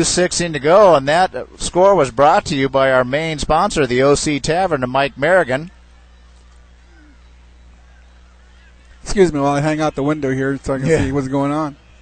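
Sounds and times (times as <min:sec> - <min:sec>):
distant stadium crowd: 0:00.0 - 0:12.0
low electrical hum: 0:00.0 - 0:12.0.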